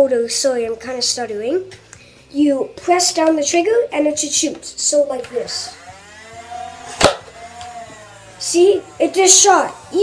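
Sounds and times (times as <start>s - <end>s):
flywheel motors whining: 4.9s - 10.0s
dart fired with sharp crack: 6.9s - 7.3s.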